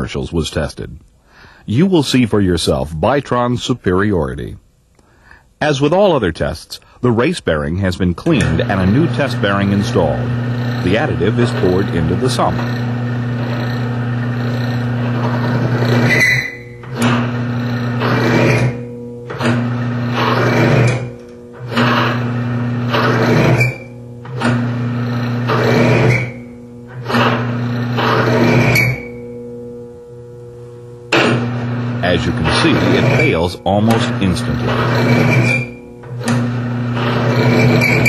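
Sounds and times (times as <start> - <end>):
metal-on-metal grinding: 8.2 - 29.9, 31.1 - 38.0
drive motor hum: 8.2 - 38.0
rising squeal: 8.6 - 21.1, 21.7 - 29.4, 31.2 - 36.0, 36.7 - 38.0.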